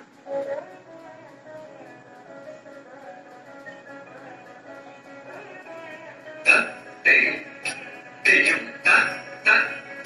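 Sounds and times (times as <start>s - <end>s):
faint melodic music: 0.0s - 10.0s
person calling dance syllables: 6.4s - 10.0s.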